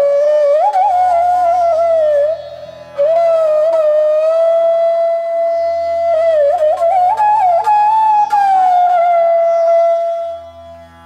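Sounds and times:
bamboo flute long note: 0.0 - 10.8.

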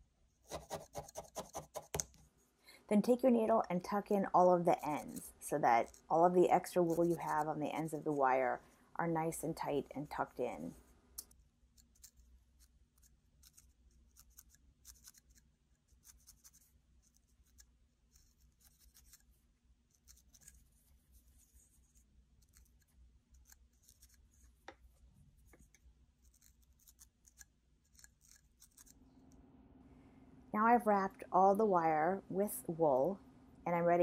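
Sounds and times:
low steady hum: 0.0 - 14.9, 16.6 - 34.0
felting needle clicks: 22.3 - 29.4.

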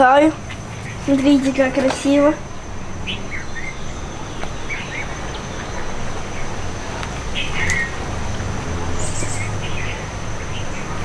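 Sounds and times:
high insect note: 0.0 - 11.0
low steady rumble: 0.0 - 11.0
bird chirps: 0.4 - 8.1, 8.8 - 11.0.

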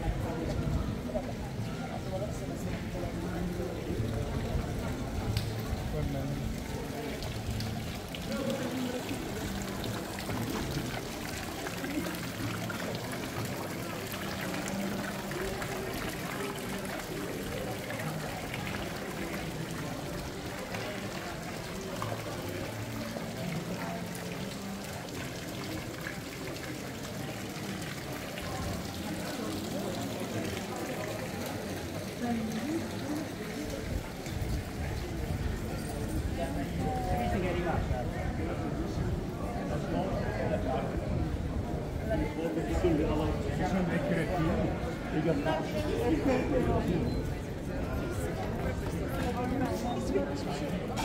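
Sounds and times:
chatter of passers-by: 0.0 - 51.0
fountain water trickling: 0.0 - 51.0.

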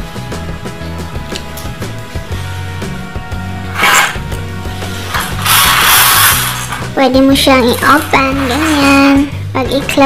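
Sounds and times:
background music: 0.0 - 10.0
roller blind rattling: 3.7 - 9.2.

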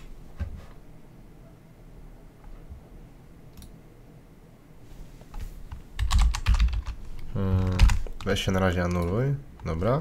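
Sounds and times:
computer keyboard typing: 6.0 - 9.8.

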